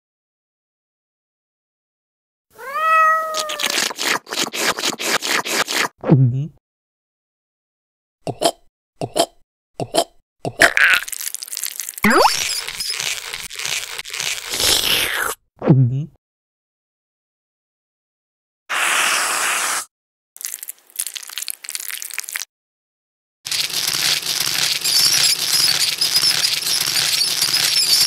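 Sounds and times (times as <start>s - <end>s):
crackling crunching sound effect: 10.6s - 15.4s, 23.5s - 28.0s.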